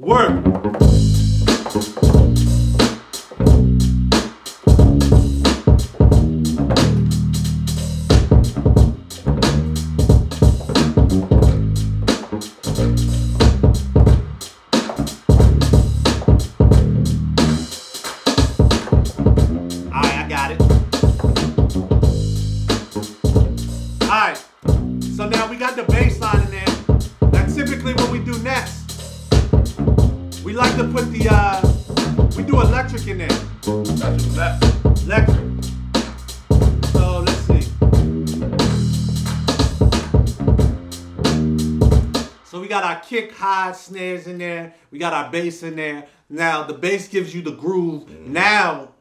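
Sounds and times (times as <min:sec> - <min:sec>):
hip-hop beat: 0:00.0 - 0:43.6
electric bass line on keyboard: 0:00.1 - 0:14.4, 0:15.0 - 0:17.8, 0:18.8 - 0:24.1, 0:24.7 - 0:42.2.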